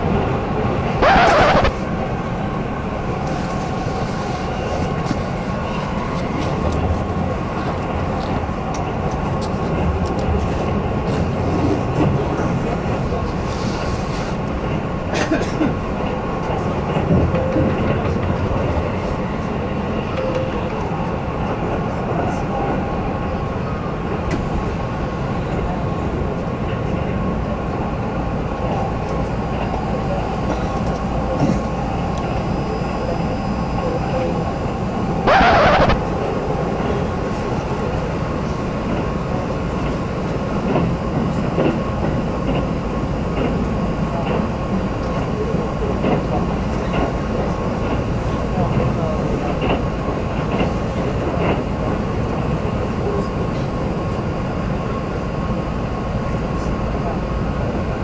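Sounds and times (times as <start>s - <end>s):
short loud burst of noise: 35.3s - 36.1s.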